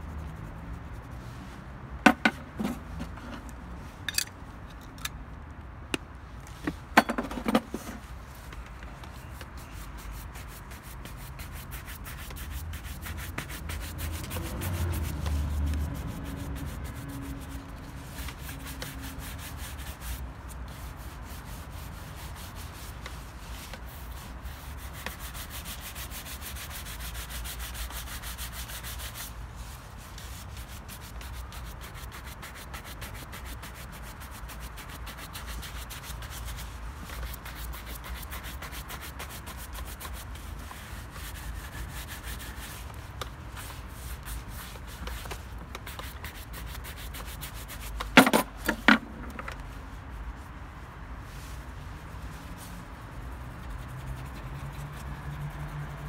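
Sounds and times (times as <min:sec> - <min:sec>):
shoe brush rubbing leather: 0:07.7 - 0:49.6, 0:51.3 - 0:56.0.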